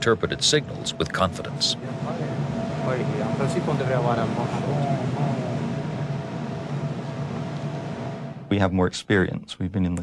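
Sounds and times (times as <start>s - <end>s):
constant equipment hum: 0.0s - 8.9s.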